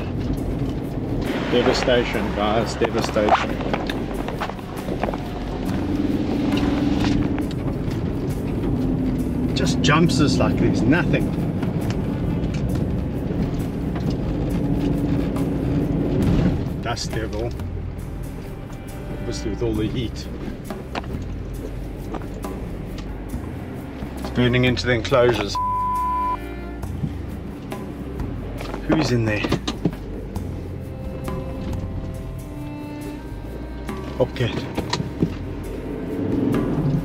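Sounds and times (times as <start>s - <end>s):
steady drone: 0.0s - 29.3s, 30.0s - 37.0s
background music: 0.0s - 37.0s
engine and tyre rumble: 0.0s - 37.0s.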